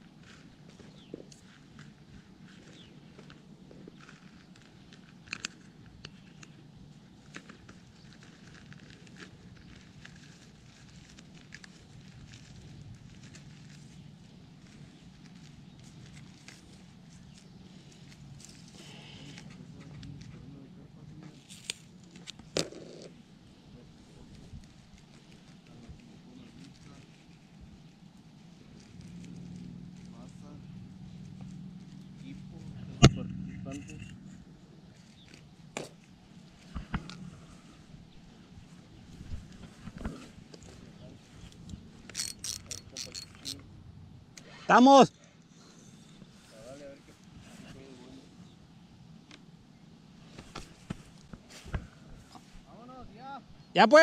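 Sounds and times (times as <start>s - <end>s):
hands kneading moist bait: 0.0s - 20.6s, 23.1s - 32.8s
low steady hum: 0.0s - 53.9s.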